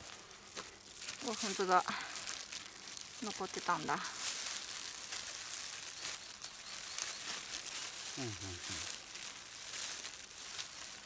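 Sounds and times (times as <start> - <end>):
plastic bag rustling: 0.0 - 11.0
plastic glove crinkling: 0.0 - 11.0.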